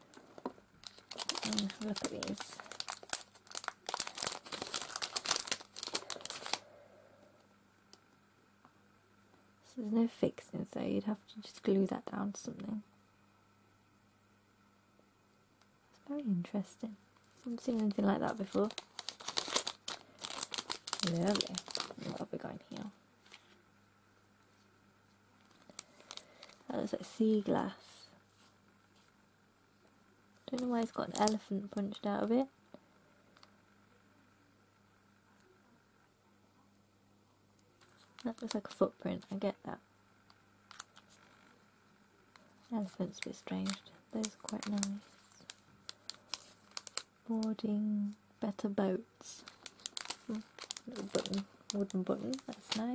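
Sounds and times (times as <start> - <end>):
plastic packet crinkling: 0.0 - 6.7, 17.2 - 23.4, 25.4 - 26.7, 30.4 - 32.1, 37.8 - 39.4, 40.7 - 41.4, 42.4 - 47.6, 49.2 - 52.9.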